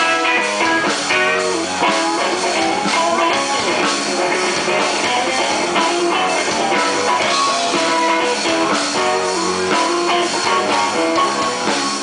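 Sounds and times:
drum kit: 0.0 - 12.0
electric bass: 0.0 - 12.0.

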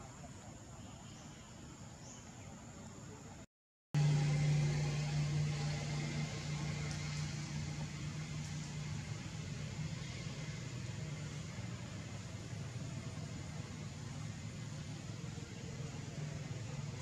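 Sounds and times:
low mechanical hum: 4.0 - 17.0.

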